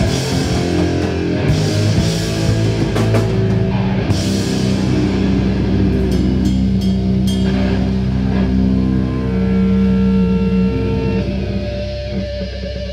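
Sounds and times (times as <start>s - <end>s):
distorted electric guitars and bass: 0.0s - 12.9s.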